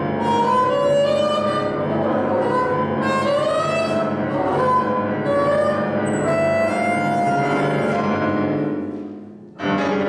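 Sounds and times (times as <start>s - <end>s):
bassoon: 0.0s - 10.0s
grand piano: 0.0s - 10.0s.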